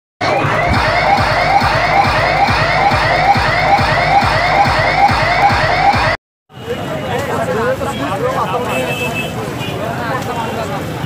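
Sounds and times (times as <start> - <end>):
siren-like pitch sweep: 0.2 - 6.2
steady bass beat: 0.2 - 6.2.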